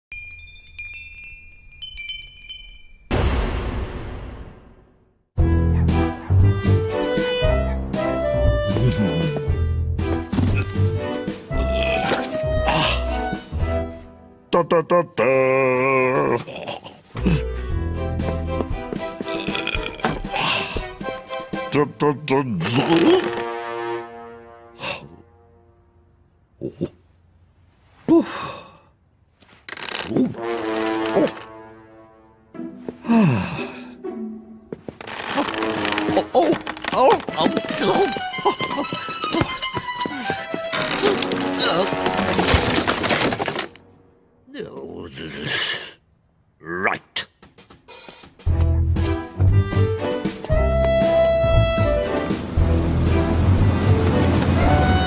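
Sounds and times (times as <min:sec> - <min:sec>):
bright chime jingle: 0:00.1 - 0:03.2, 0:37.3 - 0:40.7
loud crash of noise: 0:03.1 - 0:04.9
breathy sigh: 0:28.0 - 0:29.0.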